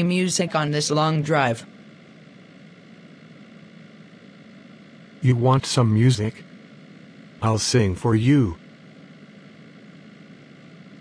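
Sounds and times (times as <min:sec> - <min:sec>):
car engine hum: 0:00.0 - 0:01.6.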